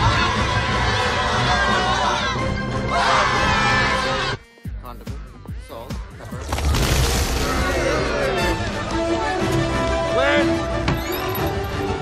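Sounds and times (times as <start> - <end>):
panicked crowd shouting: 0.0 - 4.4
trailer music: 0.0 - 12.0.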